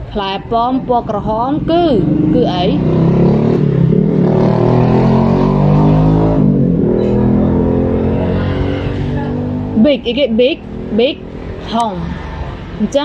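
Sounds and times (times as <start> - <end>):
people speaking: 0.0 - 2.8, 9.1 - 12.2, 12.8 - 13.0.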